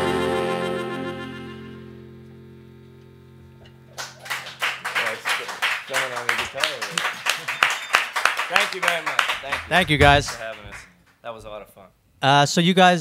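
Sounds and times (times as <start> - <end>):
live band chord: 0.0 - 4.0
people clapping: 3.9 - 11.2
voices: 4.9 - 7.8, 8.5 - 11.9.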